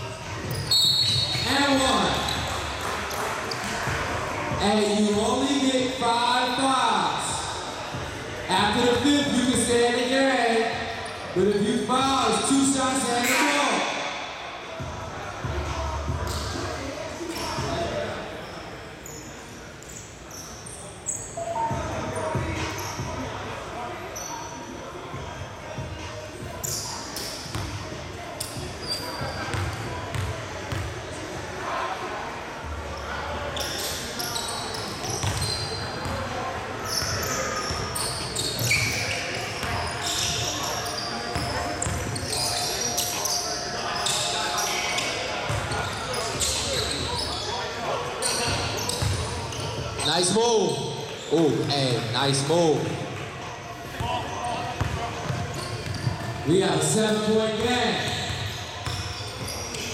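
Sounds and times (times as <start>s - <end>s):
sneakers squeaking: 0.0s - 31.5s, 32.9s - 59.9s
players' voices: 0.0s - 59.9s.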